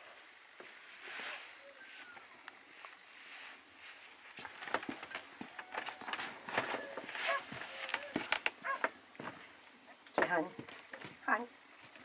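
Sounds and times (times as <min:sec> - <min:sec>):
fur coat rustling: 0:06.3 - 0:08.1.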